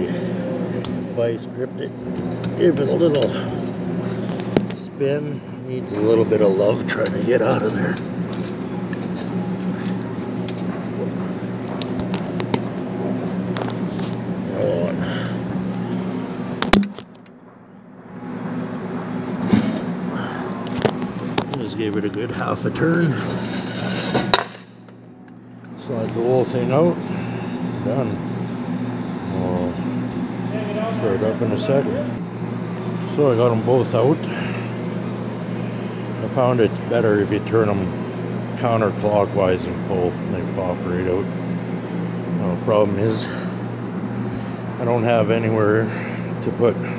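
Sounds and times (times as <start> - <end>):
steady low hum: 0.0 - 46.9.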